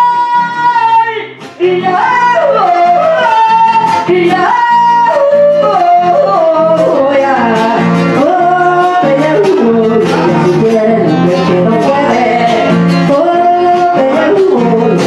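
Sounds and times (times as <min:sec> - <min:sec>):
acoustic guitar strumming: 0:00.0 - 0:15.0
woman singing: 0:00.0 - 0:15.0.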